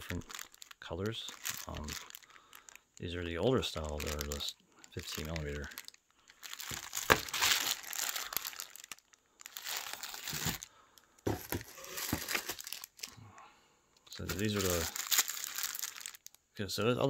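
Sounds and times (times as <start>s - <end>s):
plastic bags crinkling: 0.0s - 13.2s, 14.1s - 16.4s.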